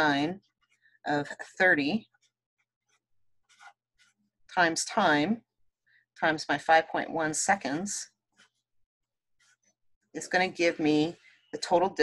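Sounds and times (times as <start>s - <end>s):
marker scratching on paper: 2.0s - 4.2s, 9.4s - 9.7s.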